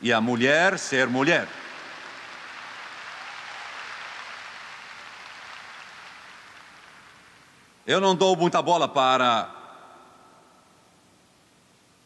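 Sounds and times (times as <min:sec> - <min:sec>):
audience applauding: 0:00.6 - 0:07.6.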